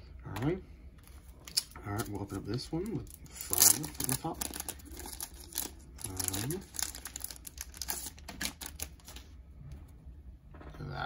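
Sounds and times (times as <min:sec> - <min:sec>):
plastic card sleeves crackling: 0:01.3 - 0:09.3.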